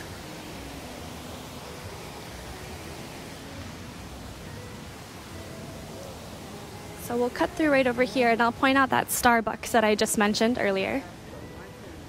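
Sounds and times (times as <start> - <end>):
waterfall splashing over rocks: 0.0 - 11.3.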